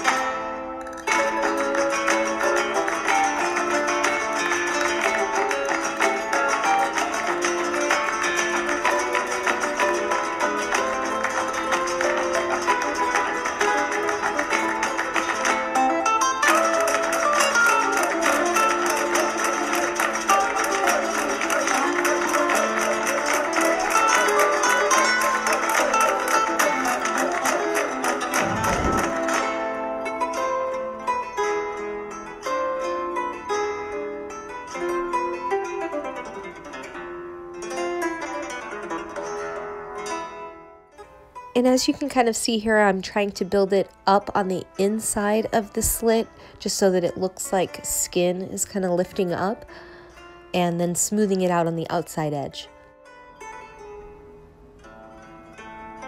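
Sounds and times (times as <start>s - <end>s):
plucked guitar music: 0.0s - 56.0s.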